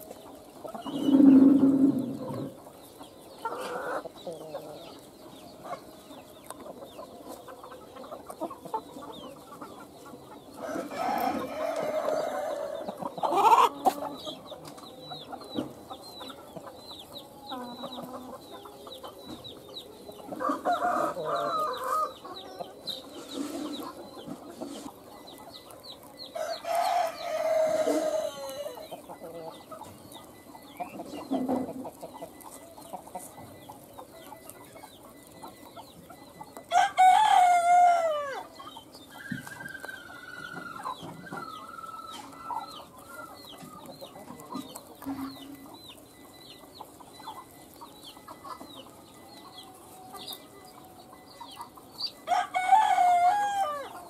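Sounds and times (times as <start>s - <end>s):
chickens clucking: 0.0s - 54.0s
rooster crowing: 10.6s - 13.7s, 20.3s - 22.2s, 26.4s - 28.9s, 36.7s - 38.5s, 52.2s - 54.0s
faint high chirps: 13.6s - 52.4s.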